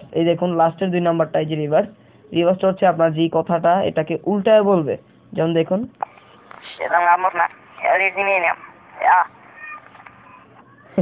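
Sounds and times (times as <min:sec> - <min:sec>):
processed pitched voice: 0:06.6 - 0:11.0.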